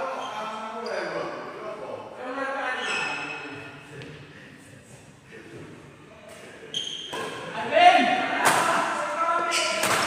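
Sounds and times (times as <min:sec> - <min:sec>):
sneaker squeak: 0:00.0 - 0:01.2, 0:02.7 - 0:03.6, 0:06.7 - 0:07.5, 0:09.4 - 0:10.0
indistinct voices echoing: 0:00.0 - 0:10.0.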